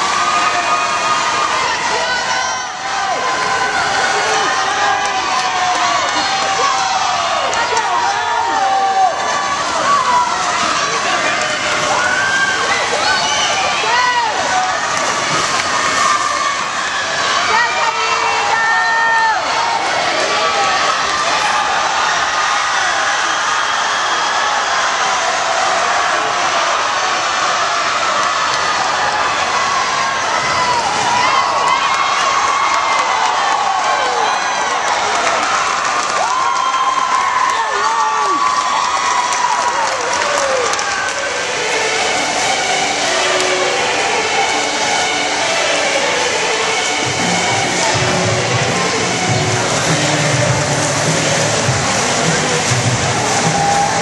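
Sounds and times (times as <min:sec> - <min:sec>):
crowd cheering and shouting: 0:00.0 - 0:54.0
music over loudspeakers: 0:41.0 - 0:54.0.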